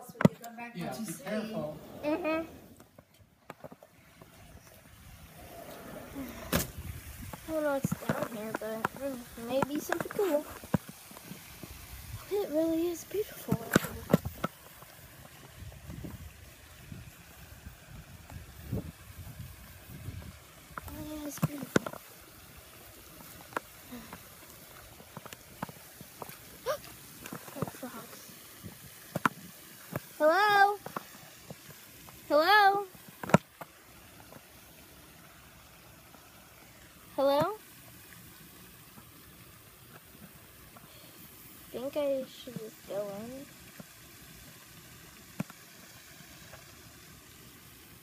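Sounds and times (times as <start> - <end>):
faint background hiss: 0.0 - 48.0
wind rumbling on microphone: 4.4 - 9.4, 11.4 - 12.4, 15.1 - 21.2.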